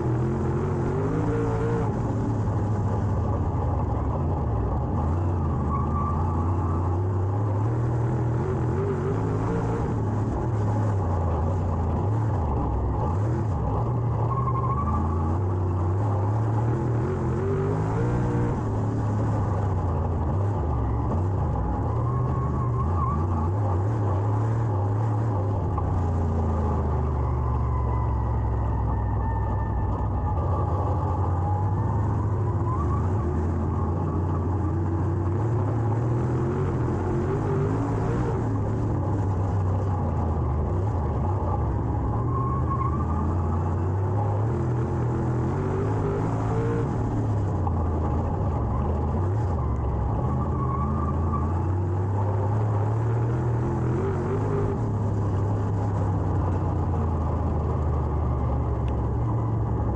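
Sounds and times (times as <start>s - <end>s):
race car engine at speed: 0.0s - 59.9s.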